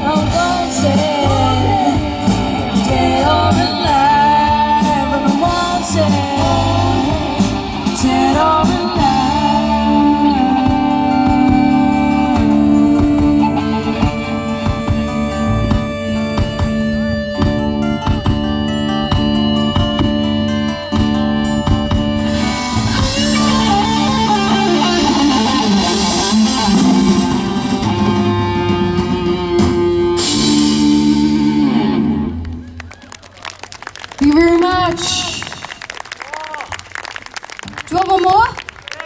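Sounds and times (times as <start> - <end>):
live rock band playing: 0.0 - 38.5.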